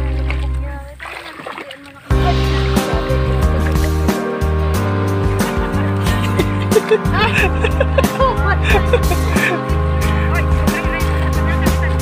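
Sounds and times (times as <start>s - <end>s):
background music: 0.0s - 1.0s, 2.1s - 12.0s
feet splashing in muddy water: 0.0s - 4.2s
voices: 0.6s - 3.9s, 5.4s - 12.0s.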